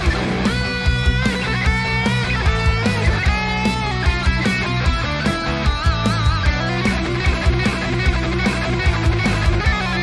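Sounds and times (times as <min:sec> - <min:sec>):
rock instrumental music: 0:00.0 - 0:10.0.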